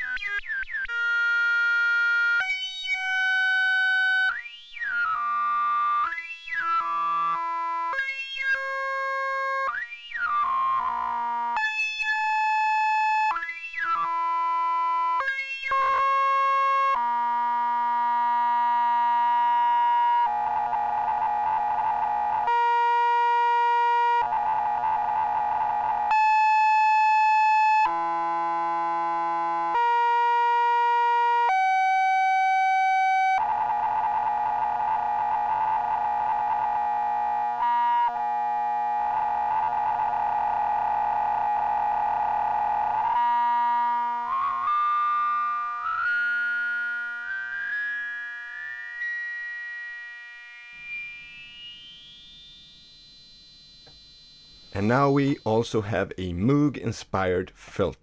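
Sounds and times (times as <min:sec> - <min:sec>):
modular synthesizer notes: 0:00.0 - 0:56.0.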